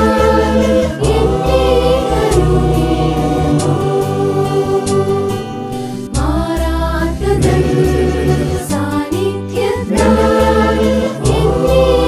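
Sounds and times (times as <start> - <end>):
choir singing in harmony: 0.0 - 12.0
held low notes: 0.0 - 12.0.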